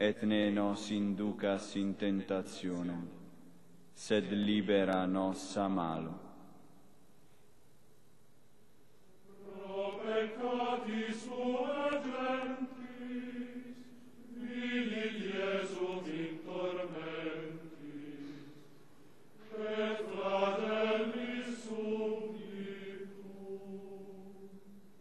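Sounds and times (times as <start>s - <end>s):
male choir chanting a hymn: 9.3s - 18.7s, 19.4s - 24.7s
breaths: 18.2s - 19.2s.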